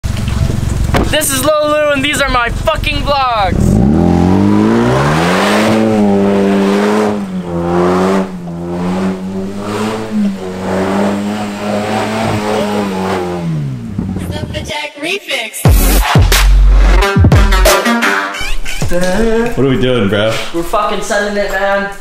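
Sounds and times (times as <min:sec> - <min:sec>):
car engine revving hard: 0:02.6 - 0:14.2.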